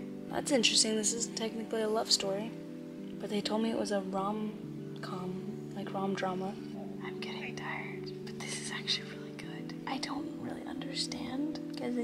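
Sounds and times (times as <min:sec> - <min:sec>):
soft background music: 0:00.0 - 0:12.0
woman whispering: 0:07.0 - 0:10.2.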